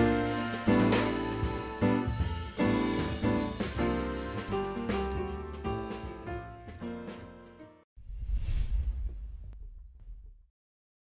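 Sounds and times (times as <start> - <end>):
deep low rumble: 8.0 - 10.5.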